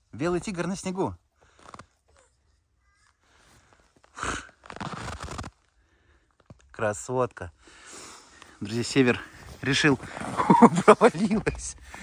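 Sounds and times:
snow crunching: 3.3s - 6.1s, 7.8s - 12.0s.

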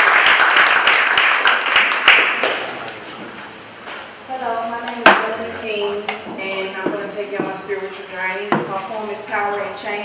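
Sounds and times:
indistinct voices in echoing hall: 0.8s - 10.0s.

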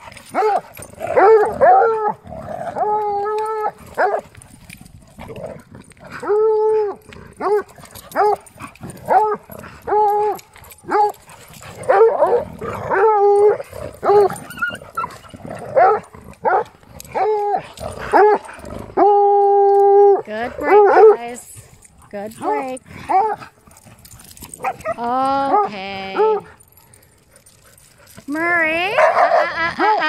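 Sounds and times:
dog barking and baying: 0.0s - 4.4s, 6.1s - 21.3s, 22.4s - 23.5s, 24.5s - 26.6s, 28.9s - 30.0s.

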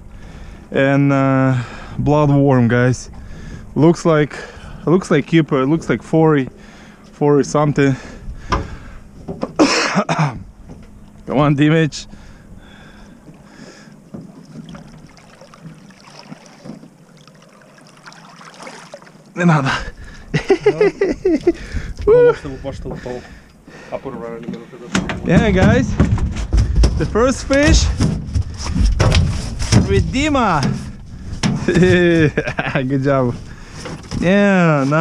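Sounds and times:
waves lapping against boat hull: 8.0s - 9.6s, 10.4s - 20.4s, 21.1s - 35.0s
wind buffeting microphone: 21.0s - 23.4s
knocks on aluminum boat deck: 24.9s - 30.0s.

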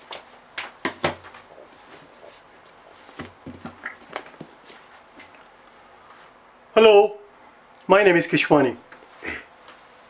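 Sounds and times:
microphone handling knocks and rustles: 3.0s - 5.3s.

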